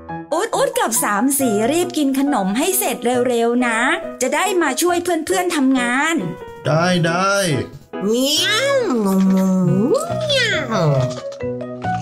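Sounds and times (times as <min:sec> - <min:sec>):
light children's music: 0:00.0 - 0:12.0.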